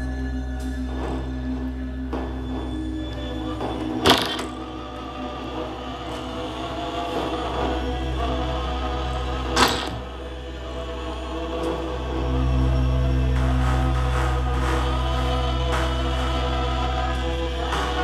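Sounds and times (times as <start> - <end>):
electronic music drone: 0.0 - 18.0.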